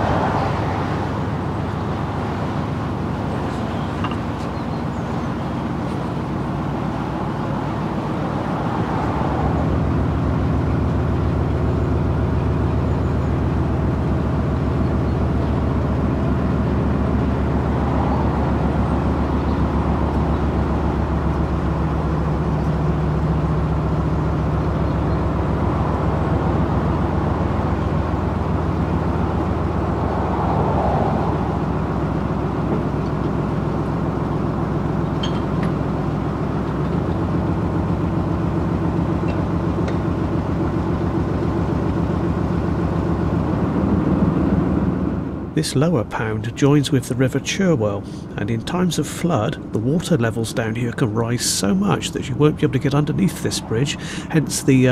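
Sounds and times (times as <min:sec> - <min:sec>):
diesel engine throbbing: 0:00.0 - 0:54.9.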